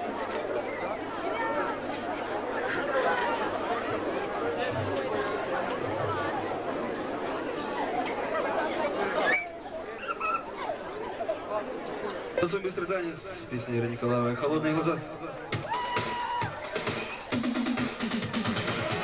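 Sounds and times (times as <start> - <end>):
audience chatter: 0.0 - 19.0.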